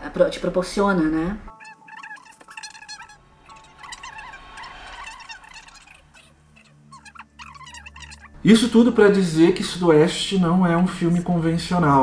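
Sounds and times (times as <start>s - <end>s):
chirping and warbling animal calls: 1.5s - 8.4s.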